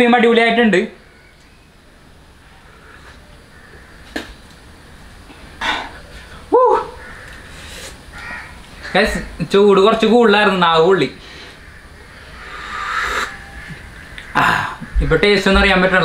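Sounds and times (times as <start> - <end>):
room hiss: 0.0 - 16.0
person's voiced reaction: 6.5 - 7.0
slurping rush of air: 12.4 - 13.5.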